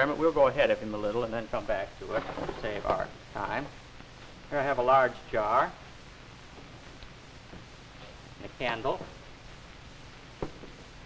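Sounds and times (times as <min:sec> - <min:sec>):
recording hiss: 0:00.0 - 0:11.0
light knock on table: 0:10.4 - 0:10.8.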